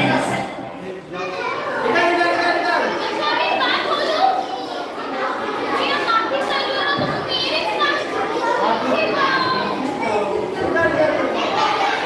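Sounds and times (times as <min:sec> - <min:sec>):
children talking and calling out: 0:00.0 - 0:12.0.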